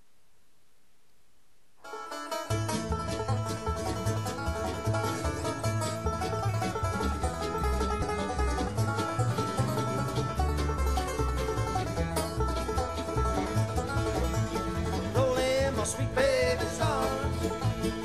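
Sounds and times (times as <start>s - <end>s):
faint hiss: 0.0s - 2.1s
banjo picking: 1.8s - 18.0s
mandolin picking: 1.8s - 18.0s
upright bass: 2.4s - 18.0s.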